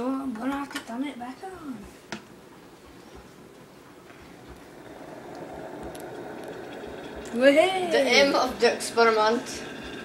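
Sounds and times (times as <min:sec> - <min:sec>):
kettle water heating rush: 0:01.2 - 0:10.0.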